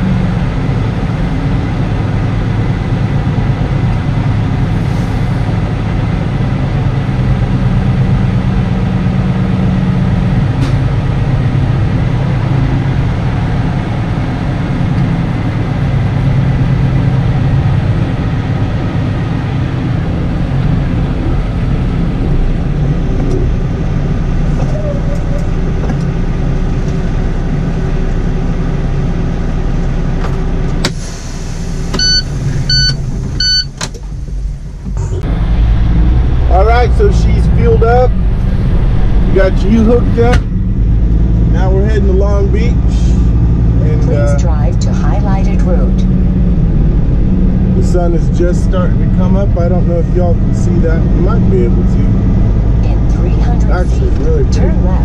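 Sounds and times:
diesel truck engine running: 0.0 - 55.0
air brake hiss: 30.9 - 32.7
short beeps: 32.0 - 33.8.

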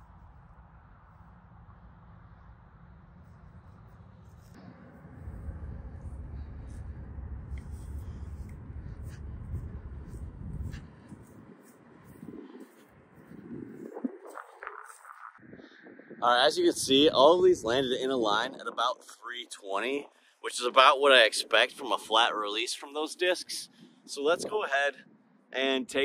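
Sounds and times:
wind rumbling on microphone: 0.0 - 26.0.

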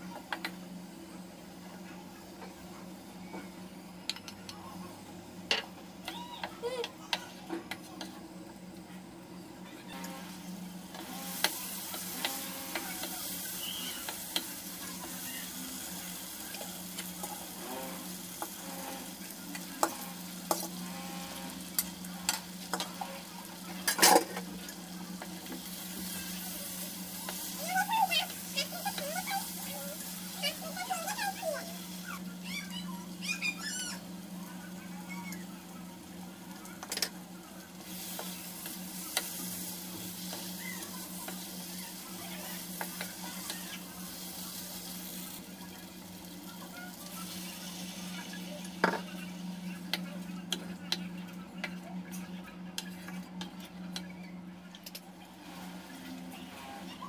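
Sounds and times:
curry sizzling in a pan: 9.8 - 51.6, 55.2 - 57.0.

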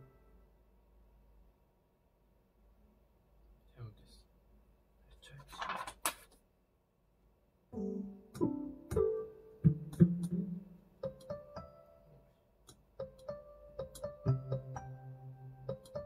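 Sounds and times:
digital piano played slowly: 0.0 - 0.5, 7.7 - 16.0.

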